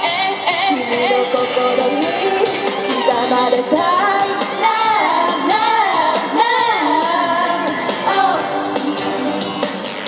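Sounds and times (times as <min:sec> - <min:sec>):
women singing into microphones: 0:00.0 - 0:08.9
pop dance track over speakers: 0:00.0 - 0:10.0.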